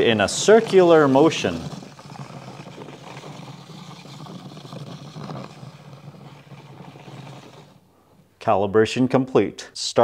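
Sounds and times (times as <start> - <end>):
plastic scraping over drywall: 0.0 - 8.2.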